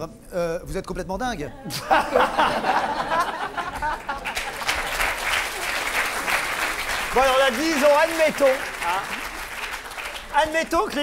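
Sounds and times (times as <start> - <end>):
audience applauding: 2.6 - 11.0.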